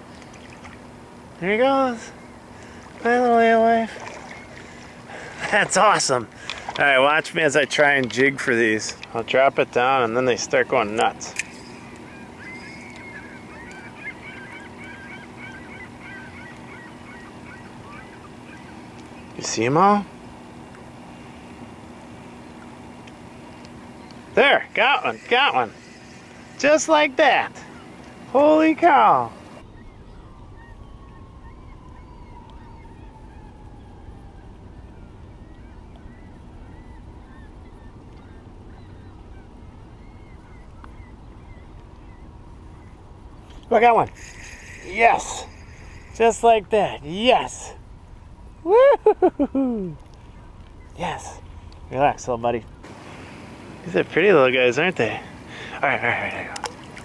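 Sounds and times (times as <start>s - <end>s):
birds calling: 0.0s - 57.0s
low outdoor rumble: 0.0s - 57.0s
steady low hum: 0.0s - 57.0s
faint short bird calls: 11.3s - 19.3s, 24.8s - 30.3s, 43.6s - 47.5s.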